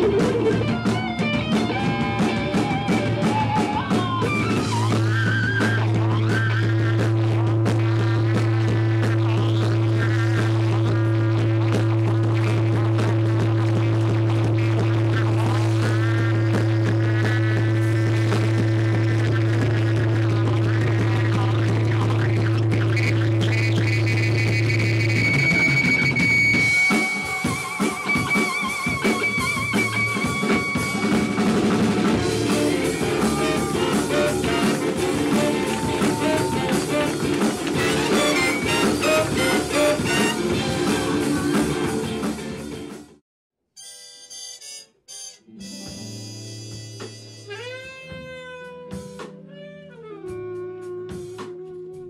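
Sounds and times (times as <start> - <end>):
electric guitar melodic lines: 0.0 - 6.7, 25.3 - 43.1, 43.8 - 52.0
jazz-rock band music: 0.0 - 43.2, 43.8 - 52.0
trumpets playing: 26.5 - 42.2, 43.8 - 48.9.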